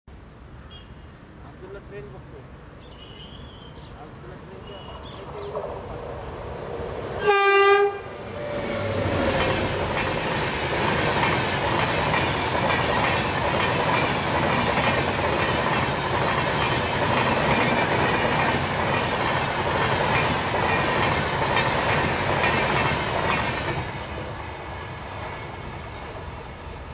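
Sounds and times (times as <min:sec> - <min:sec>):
locomotive horn blast: 0:07.2 - 0:08.2
train wheels clattering on rails: 0:08.4 - 0:24.4.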